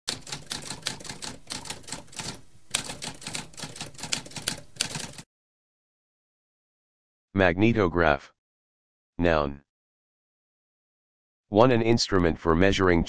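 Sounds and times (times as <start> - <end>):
typewriter keys clicking: 0.1 - 5.2.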